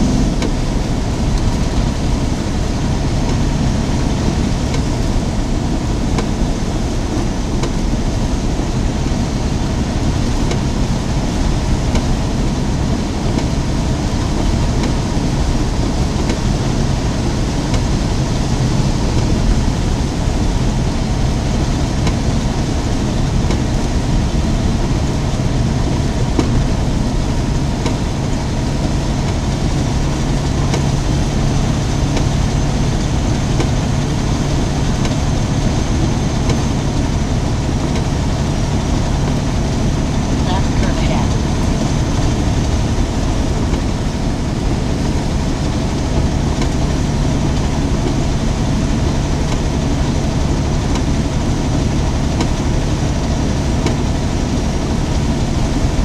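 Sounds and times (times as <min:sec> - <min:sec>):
truck engine drone: 0:00.0 - 0:56.0.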